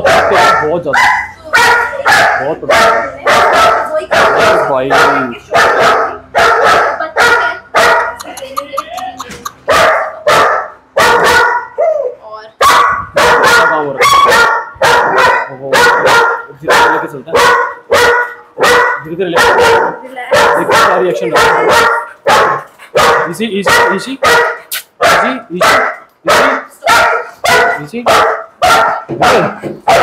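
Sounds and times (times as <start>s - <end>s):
dog barking loudly: 0.0s - 30.0s.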